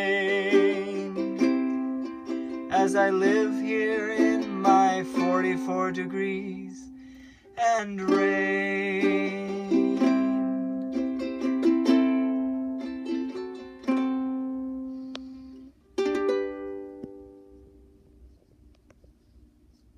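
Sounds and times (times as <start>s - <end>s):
ukulele plucked notes and chords: 0.0s - 7.0s, 8.0s - 17.9s.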